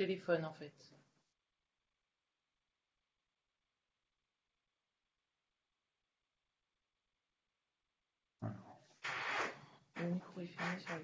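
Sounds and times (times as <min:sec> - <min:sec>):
short low vocal noise: 0:08.4 - 0:09.3.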